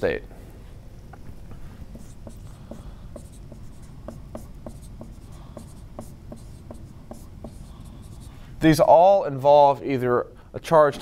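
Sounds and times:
marker squeaking on whiteboard: 1.9 - 8.3.

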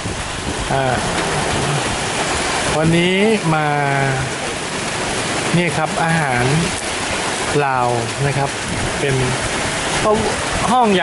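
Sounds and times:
rain falling: 0.0 - 11.0.

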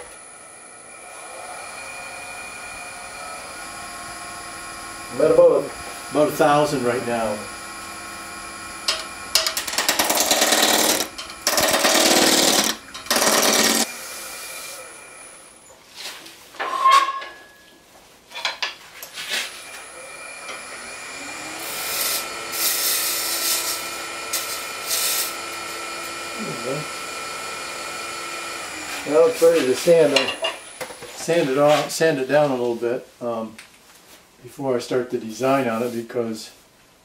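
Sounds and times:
gouge cutting wood on lathe: 0.0 - 15.4, 19.6 - 31.8
lathe motor hum: 0.0 - 15.7, 19.6 - 31.8.

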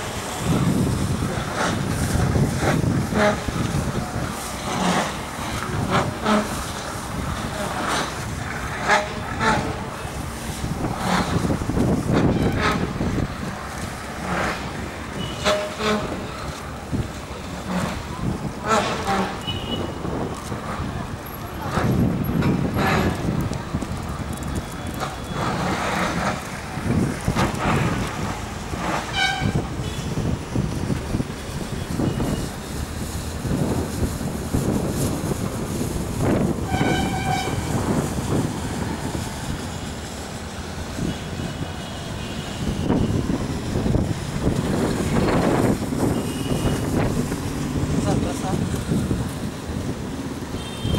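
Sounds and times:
road traffic: 0.0 - 50.9
vehicle horns tooting: 15.2 - 16.2, 18.6 - 20.0, 29.1 - 30.3, 36.6 - 37.8, 41.0 - 43.4, 46.0 - 47.2, 50.5 - 50.9.

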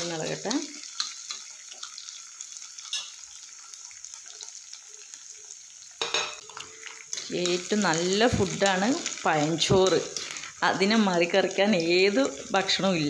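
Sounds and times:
chillies sizzling in hot oil: 0.0 - 13.0.

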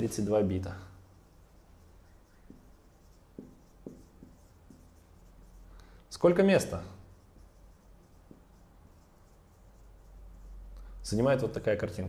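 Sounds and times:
marker pen writing on whiteboard: 0.0 - 10.9.

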